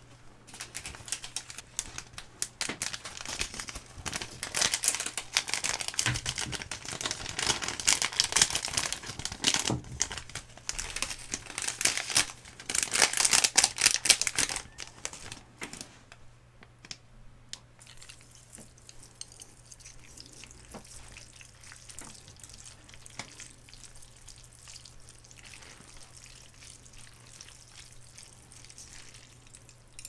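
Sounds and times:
plastic sachets crinkling and tearing: 0:00.5 - 0:15.8.

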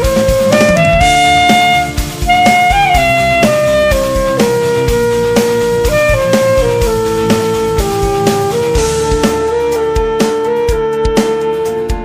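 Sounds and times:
backing track with drums: 0:00.0 - 0:12.0
saxophone slow melody: 0:00.0 - 0:12.0.

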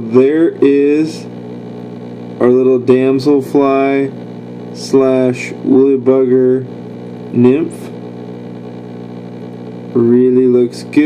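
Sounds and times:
electric motor hum: 0:00.0 - 0:11.0.

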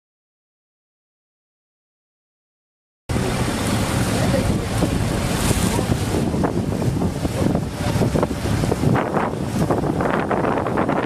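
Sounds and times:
boat motor humming: 0:03.1 - 0:11.0
choppy sea: 0:03.1 - 0:11.0
wind buffeting the microphone: 0:03.1 - 0:11.0.

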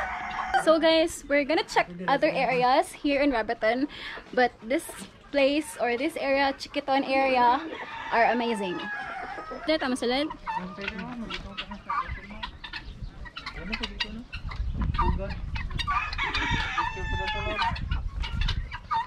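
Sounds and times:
rooster crowing: 0:00.0 - 0:00.8, 0:07.6 - 0:10.0, 0:15.9 - 0:17.6
chickens clucking: 0:00.0 - 0:19.0.

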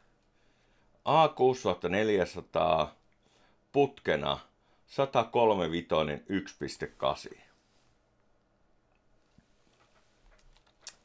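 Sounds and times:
faint small clicks: 0:09.8 - 0:11.0.

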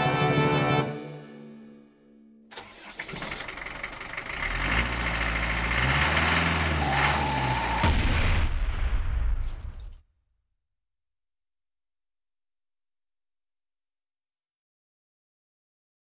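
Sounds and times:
engine revving: 0:02.5 - 0:08.0.

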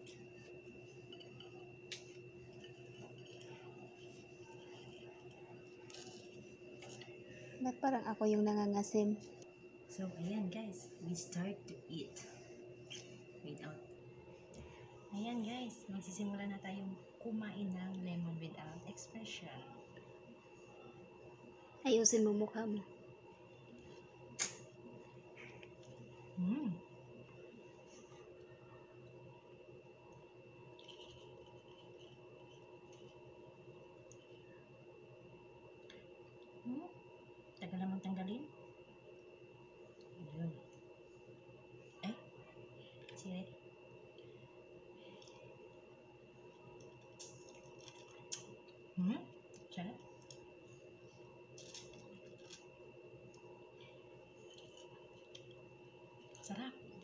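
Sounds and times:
faint hum: 0:00.0 - 0:57.0.

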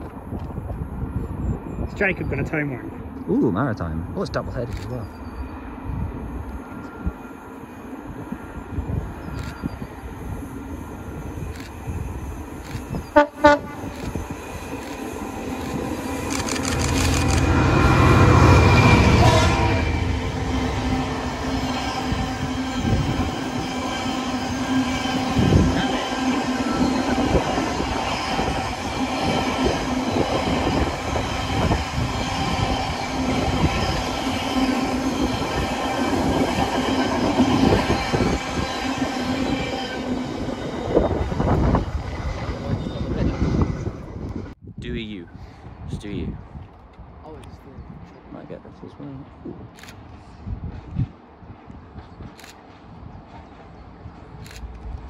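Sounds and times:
diesel locomotive engines passing: 0:00.0 - 0:44.6, 0:45.3 - 0:55.0
locomotive horn blasts: 0:13.2 - 0:13.9, 0:17.6 - 0:20.5.

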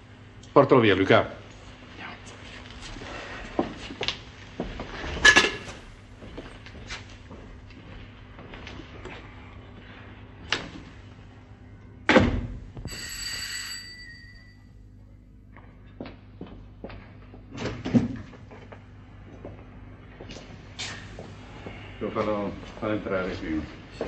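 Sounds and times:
high ringing tone: 0:12.8 - 0:14.8.

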